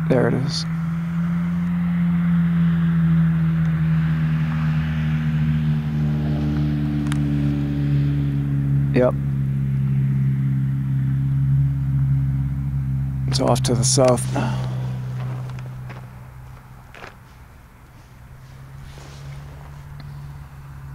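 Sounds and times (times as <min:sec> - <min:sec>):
aircraft droning overhead: 0:00.0 - 0:20.9.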